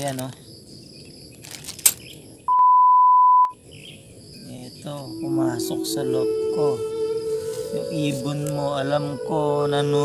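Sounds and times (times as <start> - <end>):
censor bleep tone: 2.5 - 3.6.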